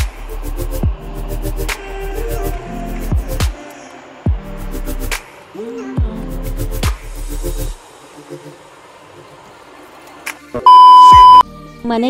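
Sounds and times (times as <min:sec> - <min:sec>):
electronic beep: 0:10.7 - 0:11.4.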